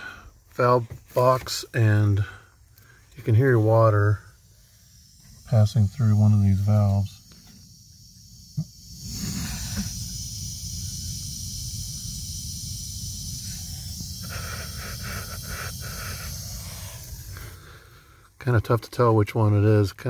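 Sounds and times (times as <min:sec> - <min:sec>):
water hissing through valve: 0:08.5 - 0:18.6.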